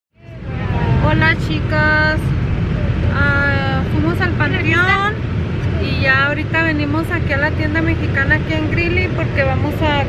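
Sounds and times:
woman talking: 0.2s - 2.3s, 3.1s - 10.0s
car rumble inside cabin: 0.2s - 10.0s.

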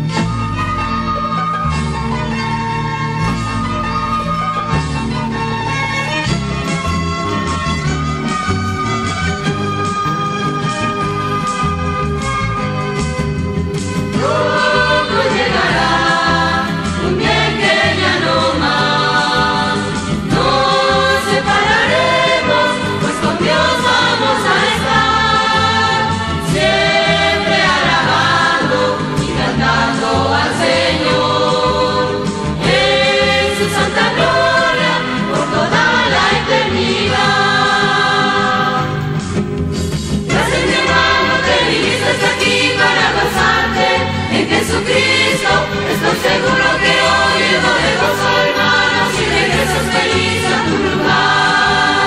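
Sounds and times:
choir singing a hymn: 14.0s - 39.2s, 40.3s - 52.0s.

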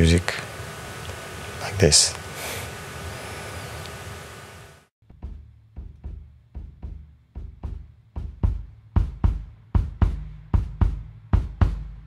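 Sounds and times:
room tone hiss: 0.0s - 4.9s.

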